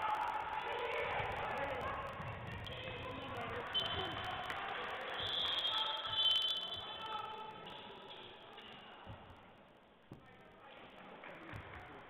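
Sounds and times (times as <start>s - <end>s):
referee's whistle blast: 5.2s - 7.1s.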